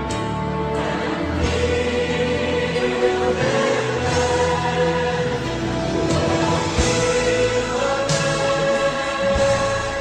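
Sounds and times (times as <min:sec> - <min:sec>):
choir singing held notes: 0:00.5 - 0:10.0.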